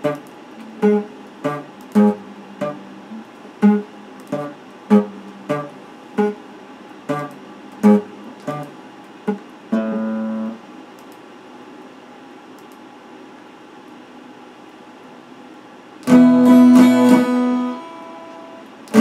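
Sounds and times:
electric guitar picked: 0:00.0 - 0:10.6, 0:16.0 - 0:19.0.

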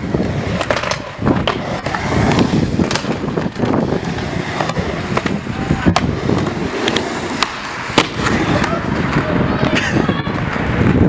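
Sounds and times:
skateboard wheels rolling on wood: 0:00.0 - 0:11.0
skateboard clacking on ramp: 0:00.1 - 0:11.0
skateboard clattering away: 0:00.2 - 0:09.9.

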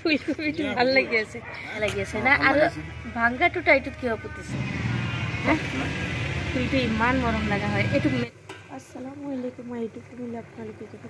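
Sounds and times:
woman talking: 0:00.0 - 0:04.4, 0:06.5 - 0:11.0
vehicle motor rumble: 0:01.8 - 0:08.3.

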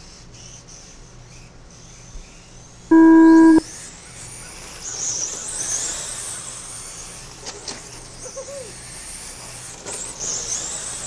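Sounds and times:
whine of electric race car motors: 0:00.1 - 0:11.0
electronic start tone: 0:02.9 - 0:03.6.

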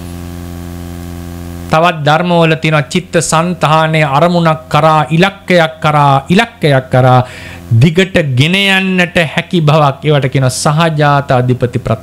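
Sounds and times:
electrical mains hum: 0:00.0 - 0:12.0
man talking: 0:01.7 - 0:12.0.

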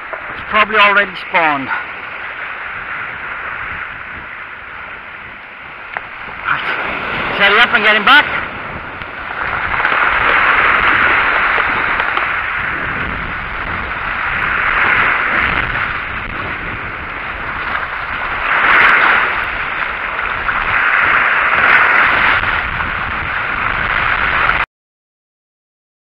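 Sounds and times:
waves breaking over rocks: 0:00.0 - 0:24.6.

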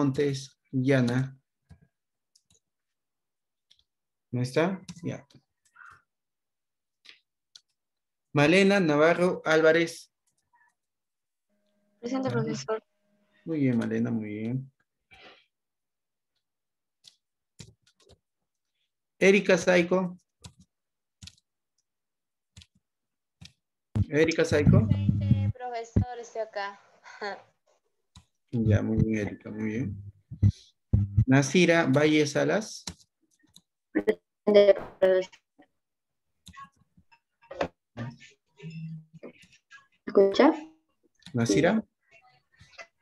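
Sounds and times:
man speaking: 0:00.0 - 0:01.4, 0:12.2 - 0:12.7, 0:13.5 - 0:14.7, 0:24.0 - 0:25.5, 0:28.6 - 0:30.1, 0:31.0 - 0:32.9, 0:41.4 - 0:41.8.

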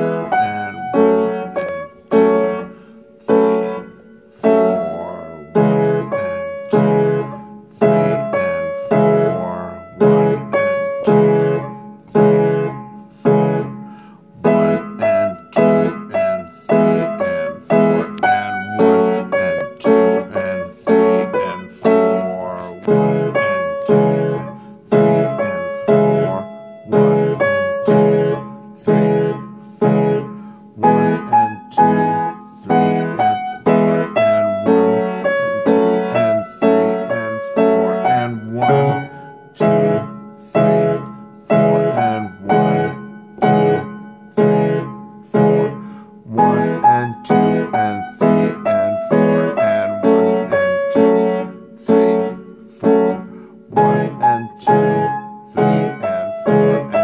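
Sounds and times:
upright piano chords and melody: 0:00.0 - 0:57.0.

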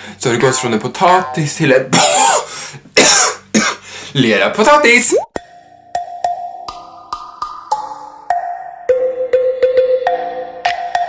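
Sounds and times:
man making cough-like bursts: 0:01.9 - 0:03.9.

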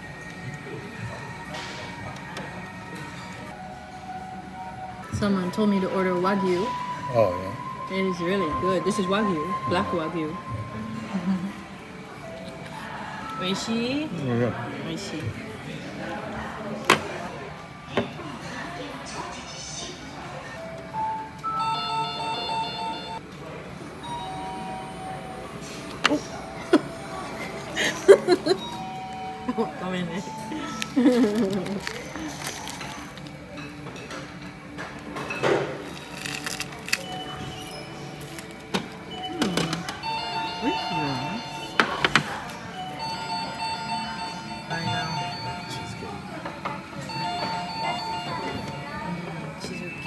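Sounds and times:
restaurant background noise: 0:00.0 - 0:50.0.

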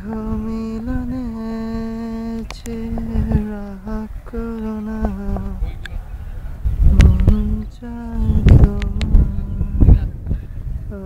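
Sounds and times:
person humming slow tune: 0:00.0 - 0:05.6
low rumble: 0:00.0 - 0:11.0.

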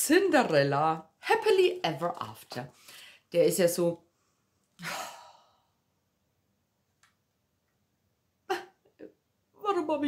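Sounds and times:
woman sighing: 0:04.8 - 0:05.8.

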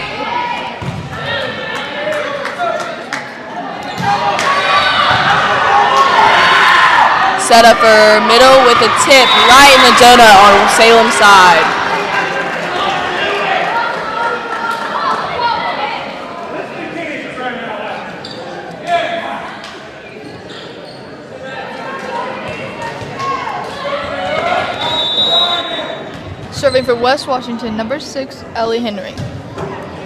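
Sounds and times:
crowd chatter echoing: 0:00.0 - 0:30.0
ball bouncing on court: 0:00.8 - 0:01.1, 0:29.1 - 0:29.8
referee's whistle: 0:09.1 - 0:09.9, 0:24.6 - 0:26.1.

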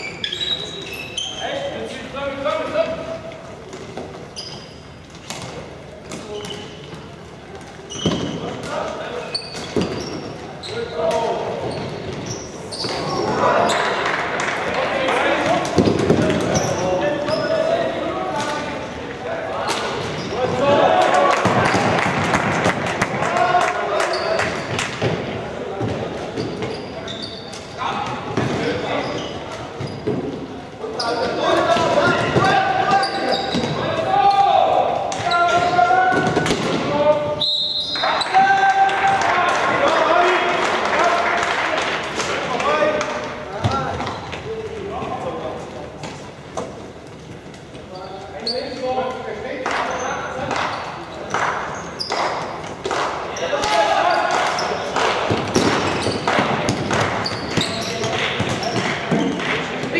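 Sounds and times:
players shouting: 0:19.4 - 0:24.6, 0:31.2 - 0:41.5.

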